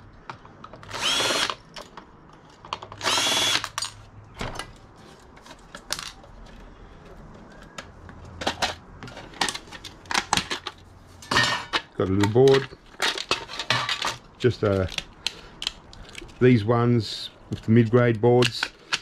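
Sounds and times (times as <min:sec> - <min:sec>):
cordless drill whining: 0:00.8 - 0:01.6, 0:03.0 - 0:03.7
clinks of metal parts handled: 0:08.4 - 0:16.4.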